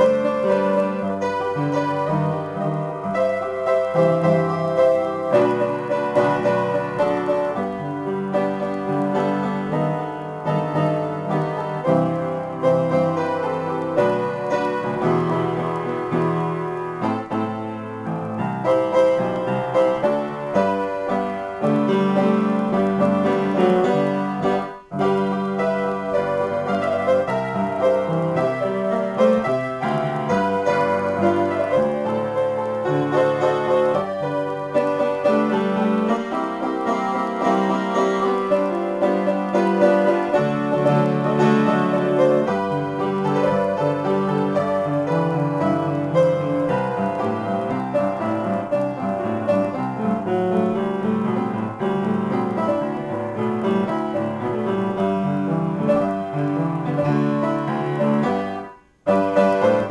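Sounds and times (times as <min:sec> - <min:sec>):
solo piano improvisation: 0:00.0 - 0:59.9.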